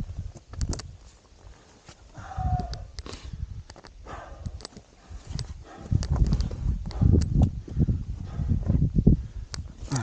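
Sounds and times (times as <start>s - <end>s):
wind on microphone: 0.0s - 1.1s, 2.1s - 10.0s.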